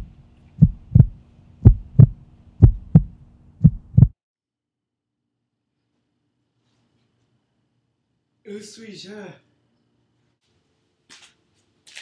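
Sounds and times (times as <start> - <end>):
faint steady low hum: 0.0 - 4.1
heartbeat thumps: 0.0 - 4.2.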